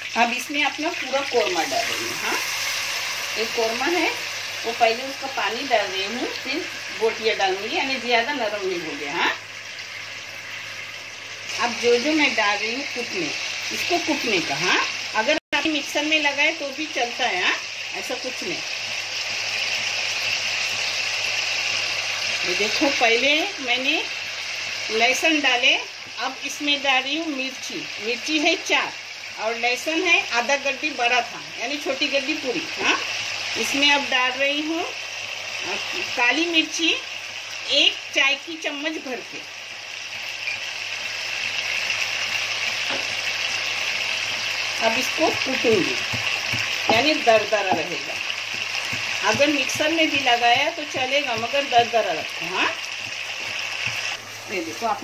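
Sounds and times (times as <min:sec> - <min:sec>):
food sizzling in hot oil: 0:00.0 - 0:55.0.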